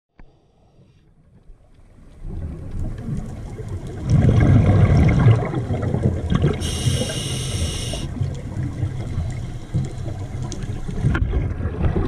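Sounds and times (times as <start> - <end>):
underwater water rumble: 0.2 - 12.0.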